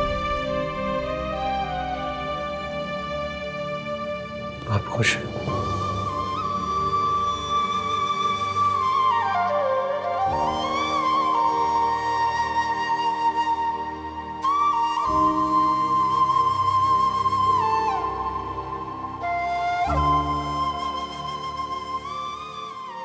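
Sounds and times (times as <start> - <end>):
flute slow melody: 0.0 - 23.0.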